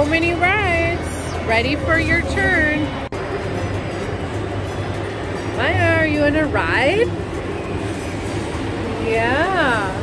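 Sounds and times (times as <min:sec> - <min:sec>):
rumble of rides and machinery: 0:00.0 - 0:10.0.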